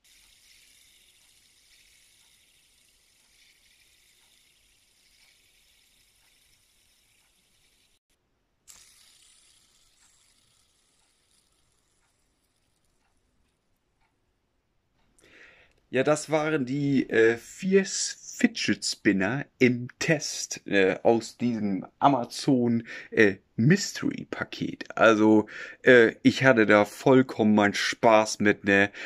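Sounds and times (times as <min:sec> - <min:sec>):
fidget spinner whirring: 0:00.0 - 0:14.2.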